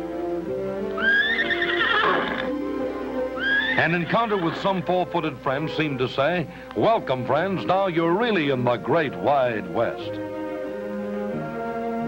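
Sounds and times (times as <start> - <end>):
background music with sustained notes: 0.0 - 12.0
horse whinnying: 1.0 - 2.6, 3.4 - 4.8.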